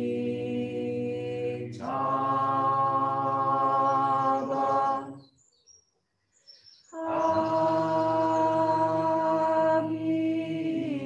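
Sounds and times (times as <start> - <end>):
devotional chanting: 0.0 - 5.4, 6.9 - 11.0.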